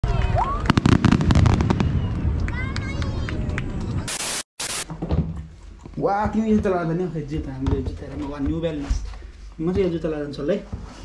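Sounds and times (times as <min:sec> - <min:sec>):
fireworks bursting: 0:00.7 - 0:02.7, 0:04.0 - 0:04.9.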